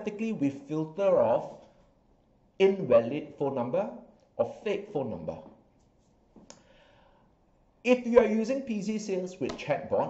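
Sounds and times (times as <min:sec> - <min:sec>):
faint intake of breath: 0:06.5 - 0:07.5.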